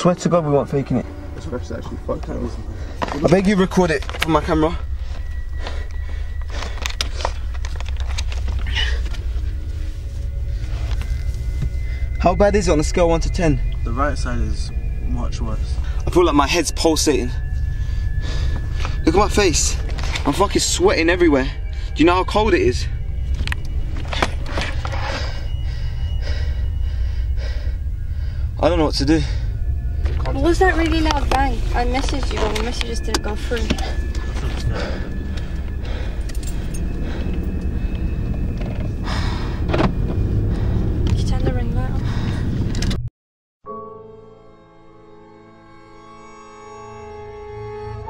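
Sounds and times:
car engine rumble in cabin: 0:00.0 - 0:43.1.

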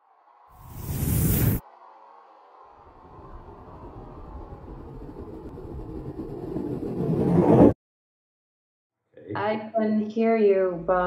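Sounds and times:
low rumbling riser: 0:00.1 - 0:07.8.

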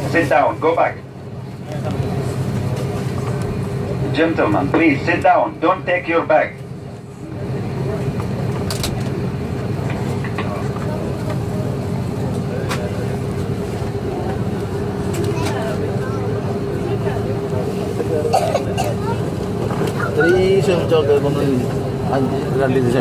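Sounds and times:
jet engines droning: 0:00.0 - 0:23.0.

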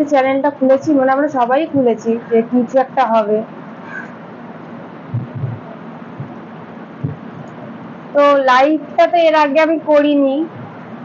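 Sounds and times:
woman speaking: 0:00.0 - 0:03.5, 0:08.1 - 0:10.6.

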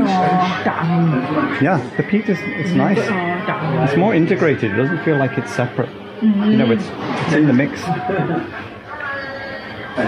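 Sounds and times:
people talking: 0:00.0 - 0:08.5
person laughing: 0:07.8 - 0:08.5.

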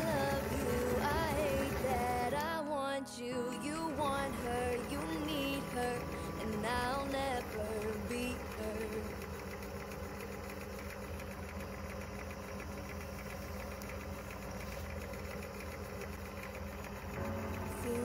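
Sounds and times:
wood lathe motor running: 0:00.0 - 0:02.4, 0:03.8 - 0:18.0
song with singing: 0:00.0 - 0:09.2, 0:17.7 - 0:18.0.

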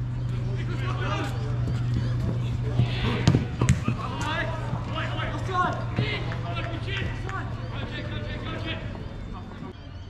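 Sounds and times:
players shouting: 0:00.2 - 0:10.0
football kicks thudding: 0:02.8 - 0:04.0.

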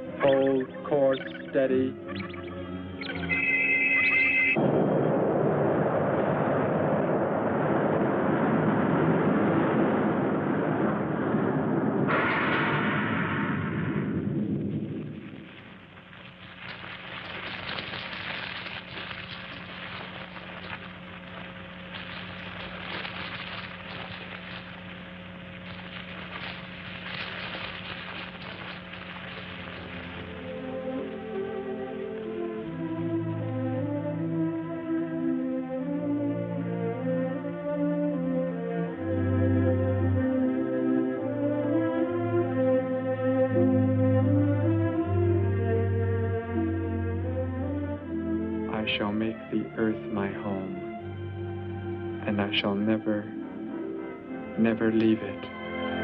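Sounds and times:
brief high tone: 0:00.0 - 0:04.6
crackling: 0:00.0 - 0:56.0
steady low hum: 0:00.0 - 0:56.0
loud explosion blast: 0:04.6 - 0:32.9.

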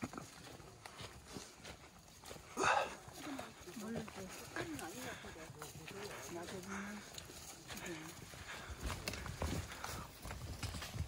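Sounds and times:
footsteps crunching dry leaves: 0:00.0 - 0:11.0
trekking poles tapping: 0:02.6 - 0:11.0.

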